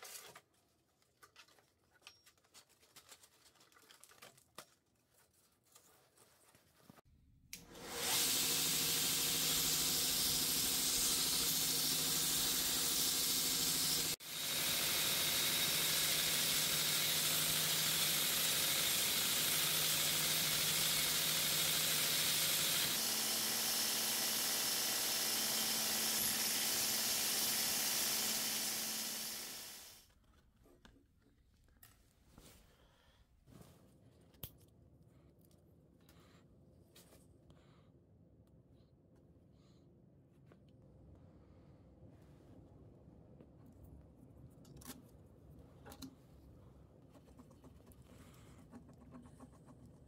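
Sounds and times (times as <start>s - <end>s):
belt grinder motor running: 7.7s - 30.0s
wood sanded on abrasive belt: 7.8s - 30.0s.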